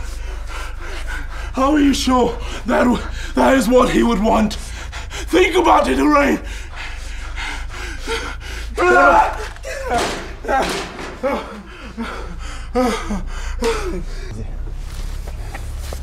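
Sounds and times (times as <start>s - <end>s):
steady low hum: 0.0s - 16.0s
man gasping and groaning: 6.4s - 14.4s.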